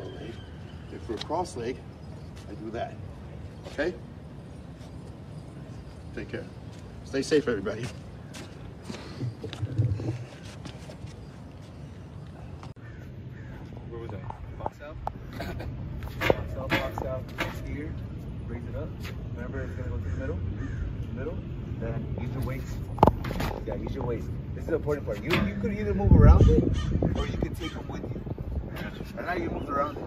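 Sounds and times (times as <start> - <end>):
indistinct voices: 22.6 - 30.0.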